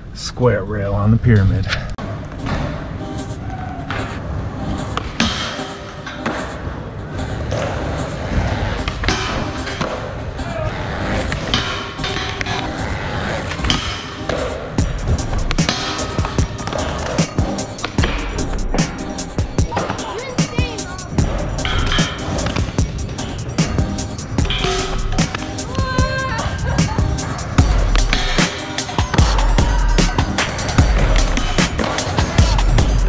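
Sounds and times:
background music: 0.0s - 33.0s
skateboard wheels rolling on concrete: 2.0s - 33.0s.

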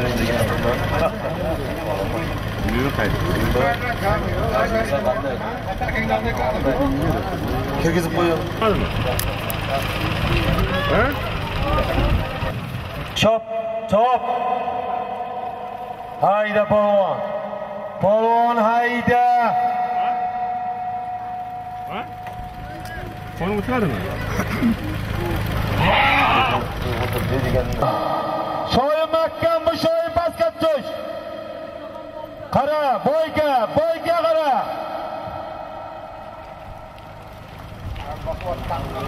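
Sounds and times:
busy open-air din: 0.0s - 39.0s
man calling loudly: 27.8s - 35.9s.

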